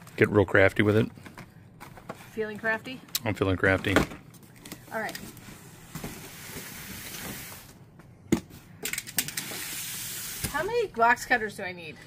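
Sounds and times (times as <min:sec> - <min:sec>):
cardboard rustling and scraping: 0:04.7 - 0:07.7.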